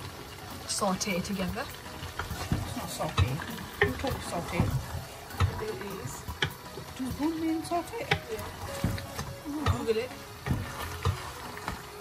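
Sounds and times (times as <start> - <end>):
food sauteing in a pan: 0.0 - 12.0
wooden spoon stirring in a pan: 0.0 - 12.0
spoon knocking on pan: 8.0 - 11.9.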